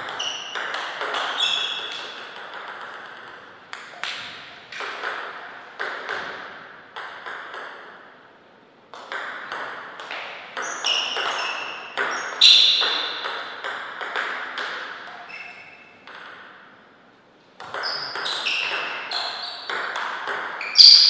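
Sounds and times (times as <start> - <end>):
table tennis ball knocking: 0.0 - 8.0, 17.6 - 19.1, 19.7 - 20.9.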